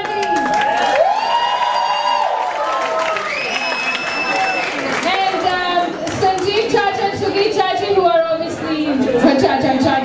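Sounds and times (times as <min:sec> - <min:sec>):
audience applauding: 0:00.0 - 0:06.2
long whoops: 0:00.2 - 0:04.7.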